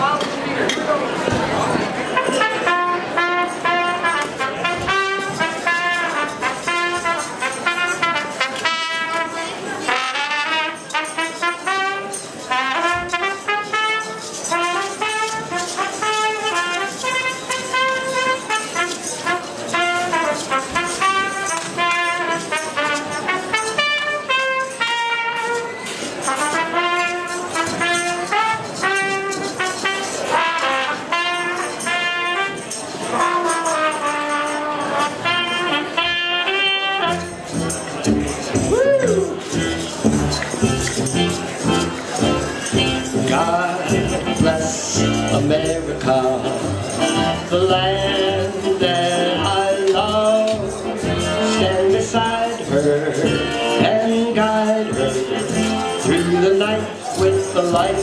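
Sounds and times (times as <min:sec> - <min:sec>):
trumpet playing march over speaker: 0:02.0 - 0:58.0.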